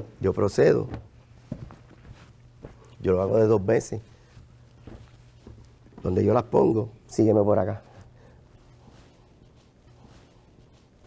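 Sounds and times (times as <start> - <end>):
low steady hum: 0.0 - 11.0
soft knocks of cloth: 0.6 - 3.0, 4.3 - 6.3.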